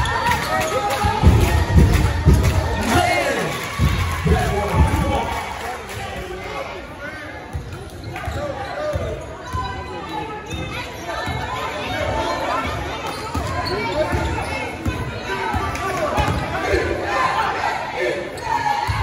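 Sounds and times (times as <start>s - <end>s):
spectators chattering: 0.0s - 19.0s.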